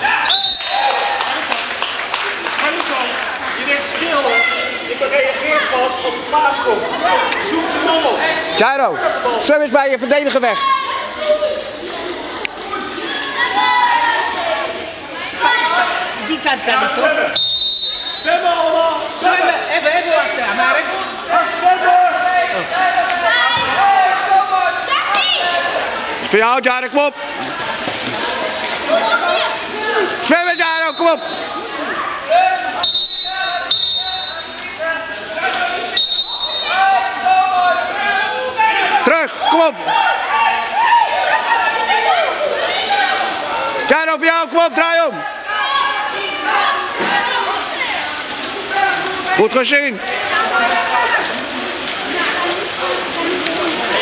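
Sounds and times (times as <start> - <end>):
people shouting in echoing hall: 0.0 - 1.3, 12.9 - 16.2, 21.2 - 26.0, 35.6 - 48.0.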